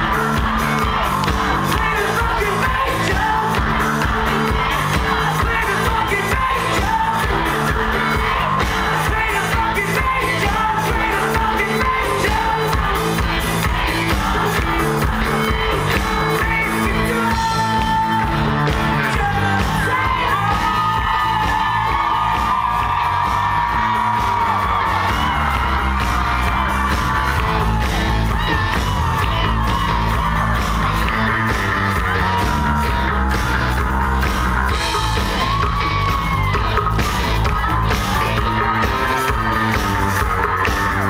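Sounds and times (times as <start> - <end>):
bass guitar: 0.0 - 41.0
crowd yelling: 0.0 - 41.0
drums: 0.0 - 41.0
lead vocal singing: 0.0 - 41.0
live rock band playing: 0.0 - 41.0.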